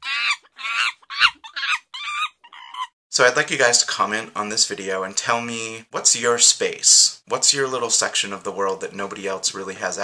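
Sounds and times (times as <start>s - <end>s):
high-pitched clucking: 0.0s - 2.9s.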